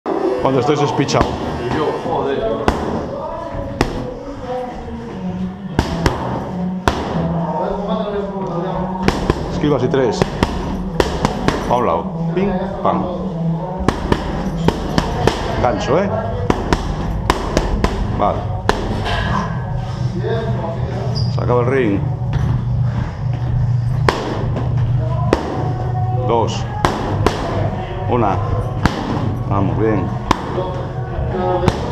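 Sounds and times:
gym background noise: 0.1s - 31.9s
boxing gloves smacking mitts: 5.8s - 7.2s, 9.0s - 9.6s, 10.2s - 11.7s, 16.5s - 19.0s
low rumble: 8.7s - 31.9s.

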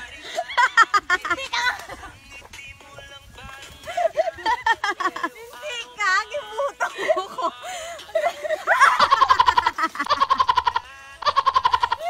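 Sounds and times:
high-pitched rapid laughter: 8.1s - 12.0s.

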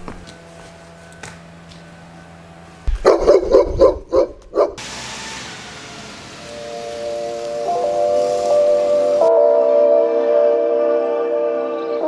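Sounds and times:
dog barking: 3.0s - 4.8s
music with long held notes: 5.2s - 12.0s.

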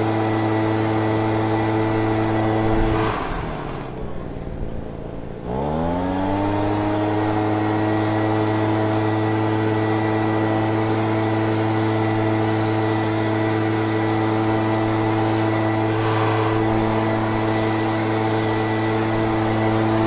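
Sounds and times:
leaf blower engine running: 0.0s - 20.0s.

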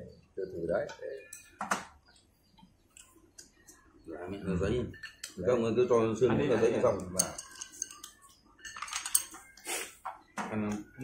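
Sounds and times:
chopsticks and crockery clinking: 0.8s - 1.9s, 4.7s - 9.7s.

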